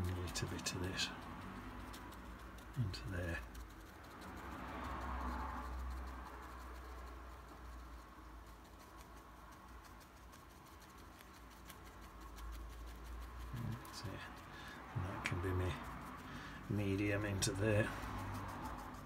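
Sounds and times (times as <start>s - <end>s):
paintbrush dabbing on paper: 0.0s - 19.0s
soft rush of noise: 0.0s - 19.0s.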